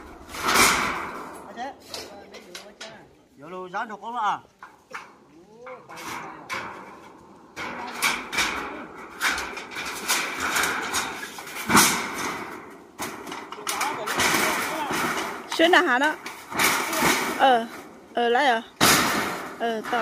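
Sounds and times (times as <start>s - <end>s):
metal sheet bang: 0.0s - 2.6s, 6.0s - 20.0s
metal roofing sheets rattling: 0.0s - 3.1s, 5.8s - 20.0s.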